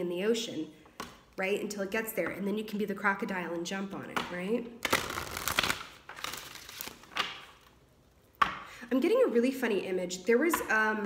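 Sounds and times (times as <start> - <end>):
booklet pages riffled: 4.8 - 7.6.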